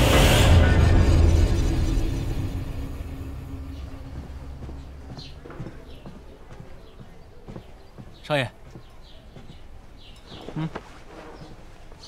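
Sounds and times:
low background score: 0:00.0 - 0:12.0.

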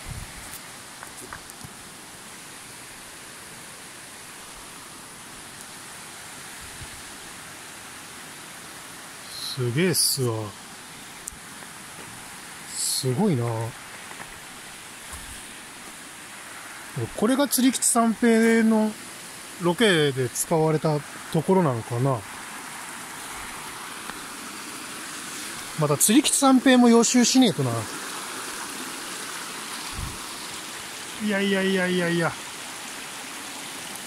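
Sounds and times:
stream running over stones: 0:00.0 - 0:34.0.

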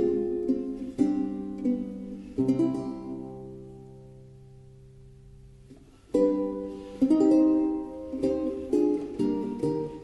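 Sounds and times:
vihuela chords plucked: 0:00.0 - 0:10.0.

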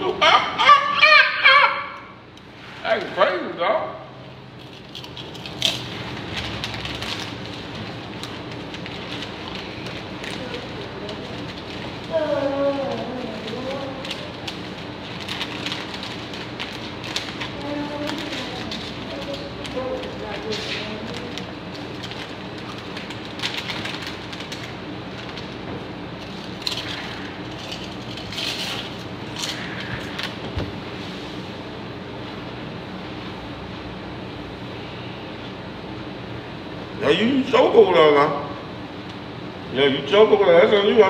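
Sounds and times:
low room hum: 0:00.0 - 0:41.0
people eating rustling and clicks: 0:04.4 - 0:31.3
snack bag crinkling: 0:04.6 - 0:30.4
faint voices: 0:09.5 - 0:15.2, 0:17.3 - 0:21.6.

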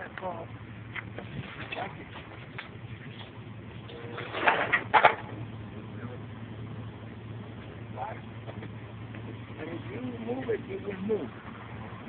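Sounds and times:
truck engine humming: 0:00.0 - 0:12.0.

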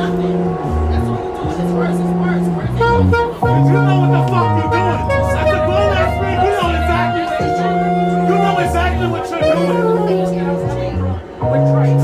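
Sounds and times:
saxophone playing held notes: 0:00.0 - 0:11.7
man shouting: 0:03.5 - 0:09.7.

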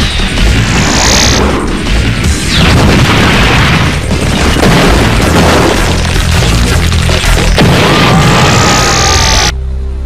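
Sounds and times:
booming impacts and crashes: 0:00.0 - 0:09.5
loud action music: 0:00.0 - 0:09.5.

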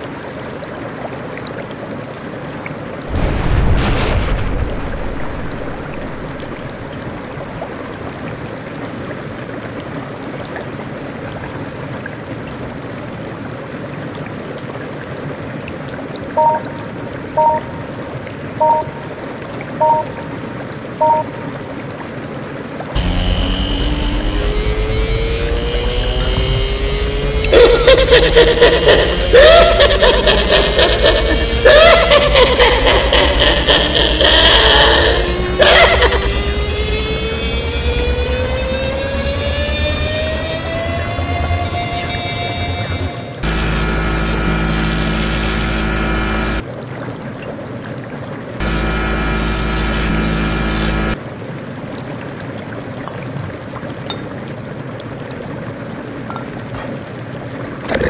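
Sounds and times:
heavy rain: 0:00.0 - 0:58.0
short two-note beeps: 0:16.4 - 0:16.7, 0:17.4 - 0:17.7, 0:18.6 - 0:19.0, 0:19.8 - 0:20.2, 0:21.0 - 0:21.3
long tone rising in pitch: 0:16.4 - 0:16.8, 0:18.6 - 0:19.1, 0:23.0 - 0:33.5, 0:34.2 - 0:46.6, 0:48.6 - 0:51.2.

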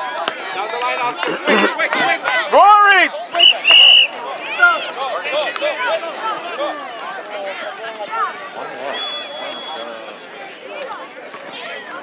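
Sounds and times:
spectator shouting: 0:00.9 - 0:06.2
referee's whistle blasts: 0:03.3 - 0:04.2, 0:08.9 - 0:10.0.

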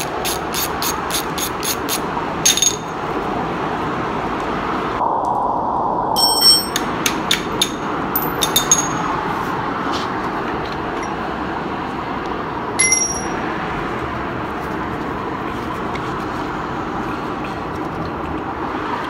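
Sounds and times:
metal tools clinking: 0:02.4 - 0:03.0, 0:07.6 - 0:09.1, 0:12.8 - 0:13.4.

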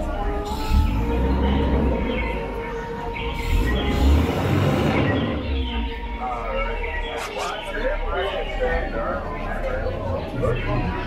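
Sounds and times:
boat motor rumble: 0:00.0 - 0:07.1
faint background music: 0:00.0 - 0:11.0.

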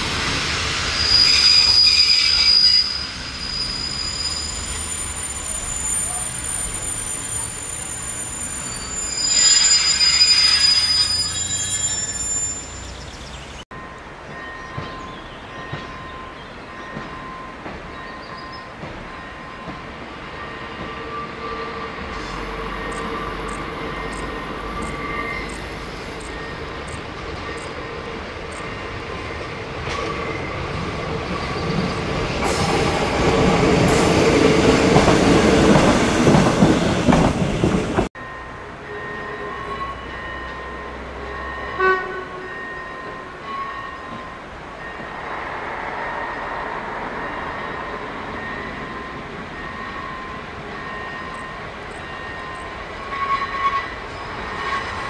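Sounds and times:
diesel train passing: 0:00.0 - 0:55.0
level crossing warning signal: 0:13.7 - 0:29.4, 0:47.5 - 0:53.8.

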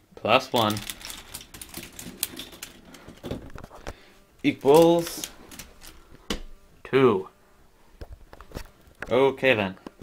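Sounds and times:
golf balls running through tracks: 0:00.2 - 0:03.7
plastic mechanism clicking and clattering: 0:00.6 - 0:03.6.

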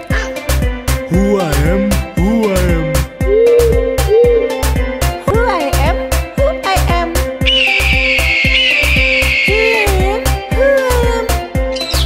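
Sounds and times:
eagle call screech: 0:07.5 - 0:09.6.

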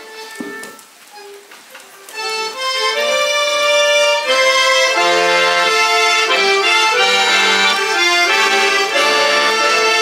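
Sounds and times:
scattered instrument notes: 0:02.1 - 0:10.0.

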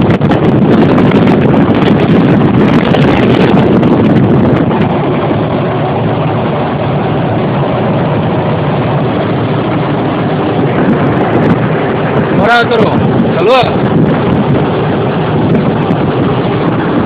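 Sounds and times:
truck engine and road noise: 0:00.0 - 0:17.0
wind buffeting microphone: 0:00.0 - 0:17.0.

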